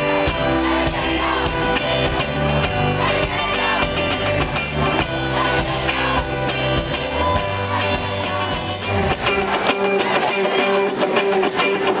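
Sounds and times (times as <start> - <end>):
bass guitar: 0.0 - 12.0
drums: 0.0 - 12.0
electric guitars: 0.0 - 12.0.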